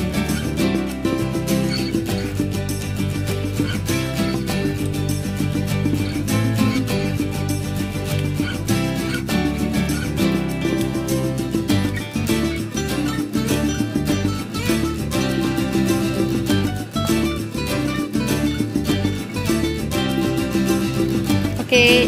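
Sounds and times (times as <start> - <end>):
upbeat plucked guitar music: 0.0 - 22.0.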